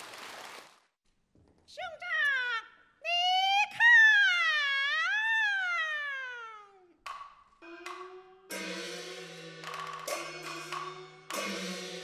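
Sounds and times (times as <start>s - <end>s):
sharp percussion knocks: 7.1s - 12.0s.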